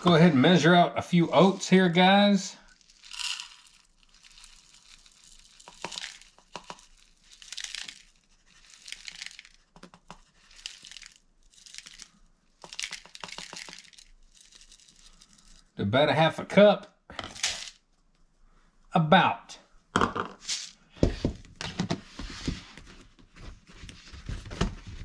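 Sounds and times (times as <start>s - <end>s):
oats pouring into plastic cup: 0.0s - 15.7s, 17.3s - 17.8s
flakes clicking in cup: 2.8s - 15.5s.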